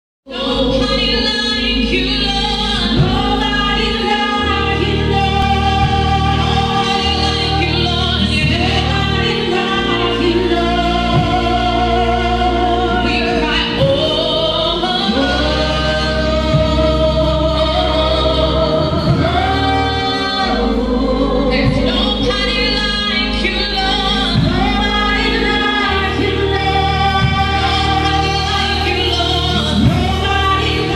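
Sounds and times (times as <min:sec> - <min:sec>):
keyboard and bass accompaniment: 0:00.2 - 0:30.9
gospel choir singing: 0:00.3 - 0:30.9.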